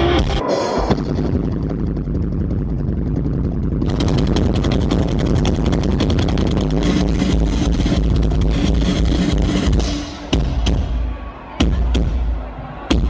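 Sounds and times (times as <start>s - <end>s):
fast drum beat: 3.8s - 13.0s
live heavy rock band: 4.2s - 13.0s.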